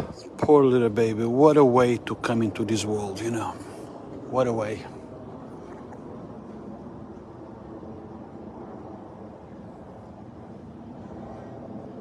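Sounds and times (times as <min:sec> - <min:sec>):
faint steady hum: 0:00.0 - 0:12.0
low street rumble: 0:00.0 - 0:12.0.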